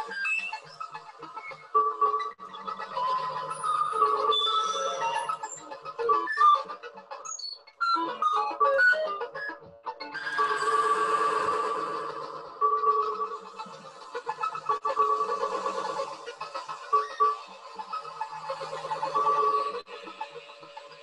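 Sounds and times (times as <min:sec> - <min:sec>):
bleeping electronic synthesizer notes: 0:10.2 - 0:19.8.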